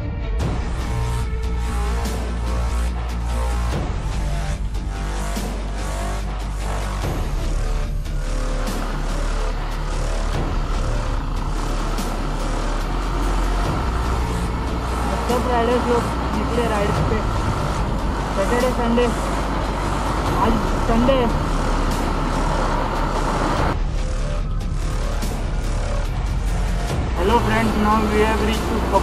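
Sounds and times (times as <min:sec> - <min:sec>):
music: 0:00.0 - 0:29.0
motorcycle engine: 0:00.5 - 0:29.0
voice: 0:15.1 - 0:17.3, 0:18.4 - 0:19.2, 0:20.3 - 0:21.4, 0:27.2 - 0:29.0.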